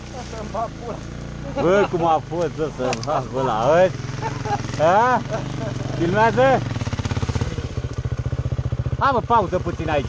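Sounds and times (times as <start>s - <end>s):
dirt bike engine at low revs: 0.0s - 10.0s.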